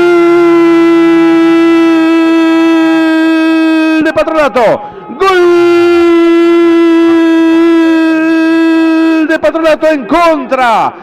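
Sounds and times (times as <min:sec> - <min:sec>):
man shouting goal: 0:00.0 - 0:10.9.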